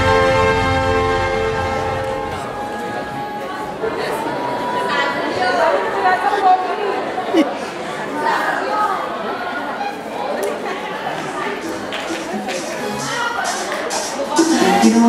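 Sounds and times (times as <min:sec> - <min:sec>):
crowd talking in echoing hall: 0:00.0 - 0:15.0
louder voices: 0:00.0 - 0:15.0.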